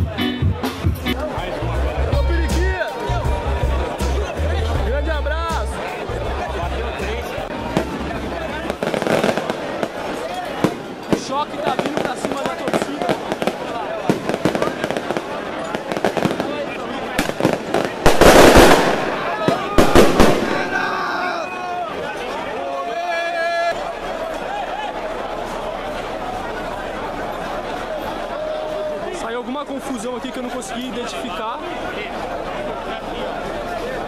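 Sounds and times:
crowd shouting: 0:00.0 - 0:34.0
fireworks crackling and popping: 0:07.7 - 0:20.8.

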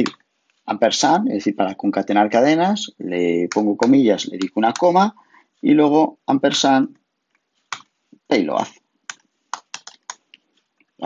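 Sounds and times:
computer keyboard keystrokes: 0:09.1 - 0:10.2.

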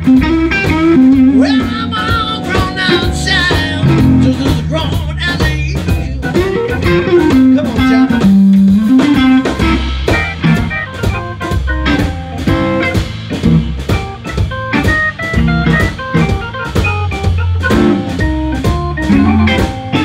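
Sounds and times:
drums: 0:00.0 - 0:20.0
electric guitar phrases: 0:00.0 - 0:20.0
organ: 0:00.0 - 0:20.0.

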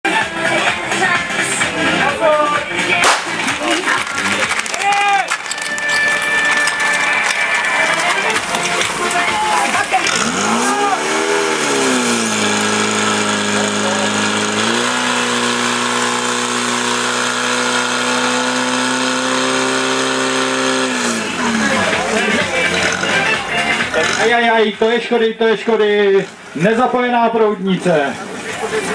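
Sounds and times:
pump engine revving: 0:03.0 - 0:24.6.

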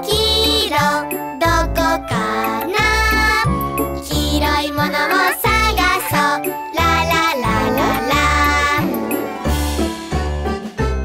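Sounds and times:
person singing children's song: 0:00.0 - 0:09.5.

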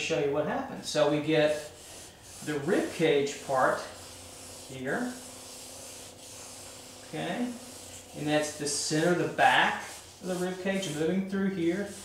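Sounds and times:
drawing tool rubbing on paper: 0:01.4 - 0:12.0.

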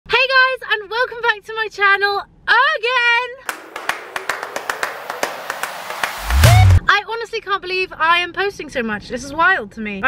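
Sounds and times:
sharp clap-like clicks: 0:03.5 - 0:06.8.

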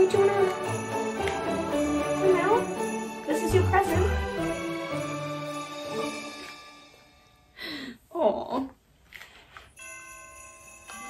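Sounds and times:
festive holiday song with sleigh bells: 0:00.0 - 0:08.0, 0:09.7 - 0:11.0.

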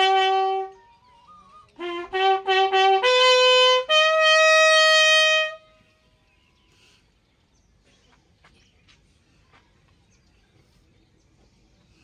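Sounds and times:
bugle call: 0:00.0 - 0:05.7.

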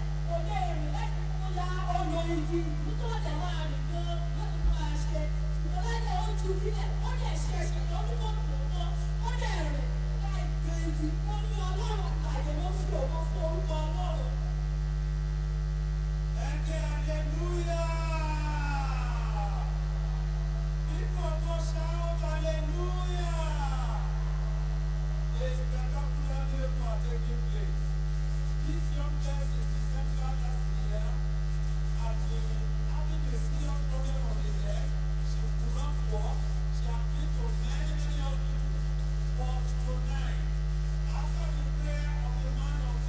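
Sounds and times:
electrical mains hum: 0:00.0 - 0:43.0.

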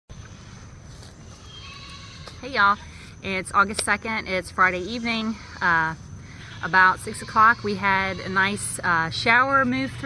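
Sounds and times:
low outdoor rumble: 0:00.1 - 0:10.0.

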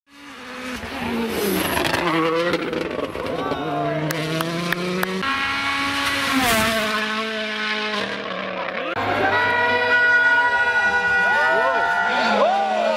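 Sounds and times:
rally car engine revving: 0:00.1 - 0:12.9.

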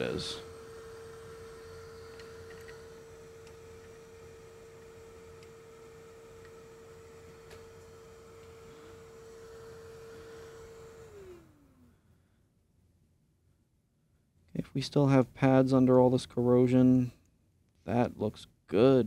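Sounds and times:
blower fan humming and spinning down: 0:00.0 - 0:12.4.

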